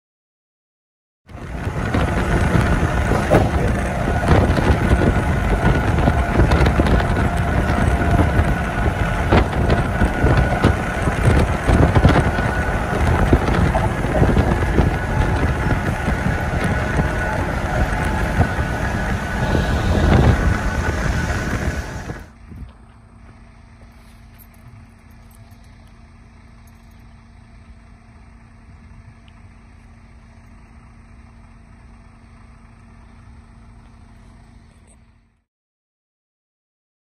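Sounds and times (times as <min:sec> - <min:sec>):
truck road and wind noise: 0:01.3 - 0:35.4.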